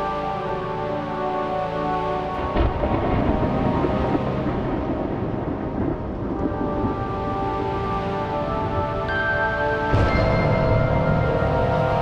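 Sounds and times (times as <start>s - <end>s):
film score music: 0.0s - 12.0s
deep rumble: 2.5s - 7.6s.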